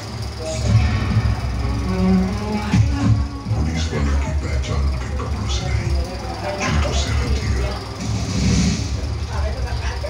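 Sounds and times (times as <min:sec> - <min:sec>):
bass-heavy film soundtrack music: 0:00.4 - 0:09.1.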